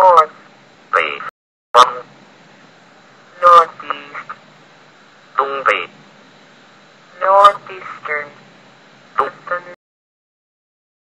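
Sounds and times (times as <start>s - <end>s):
faint steady hiss: 0.0s - 9.8s
synthesized voice speaking: 1.0s - 2.1s, 3.3s - 4.4s, 5.4s - 6.0s, 7.1s - 8.4s, 9.2s - 9.8s.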